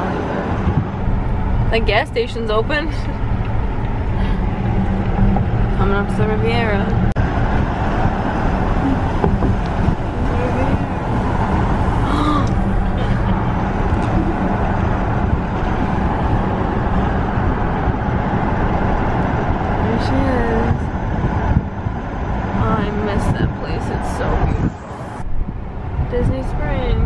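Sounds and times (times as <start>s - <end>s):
road and tyre noise: 0.0s - 27.0s.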